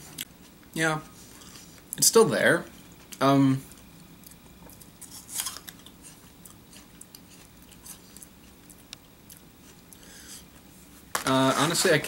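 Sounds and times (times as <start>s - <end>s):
chewing with small crunches: 2.7s - 11.1s
crunchy bite into an apple: 4.8s - 8.6s.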